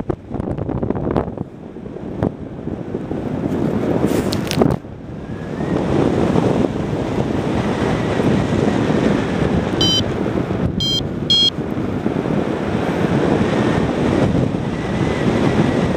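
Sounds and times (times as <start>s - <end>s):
wind buffeting microphone: 0.0s - 15.9s
short high electronic beeps: 9.8s - 10.0s, 10.8s - 11.5s.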